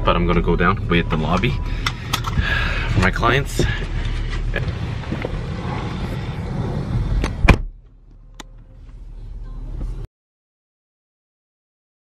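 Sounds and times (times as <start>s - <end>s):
low hum: 0.0s - 10.1s
handling noise inside car: 1.2s - 10.1s
car door shutting: 1.8s - 9.0s.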